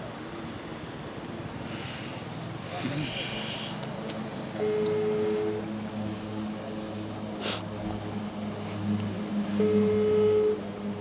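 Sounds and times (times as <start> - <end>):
low steady hum: 0.0 - 11.0
phone ringback beep: 4.6 - 5.6, 9.6 - 10.6.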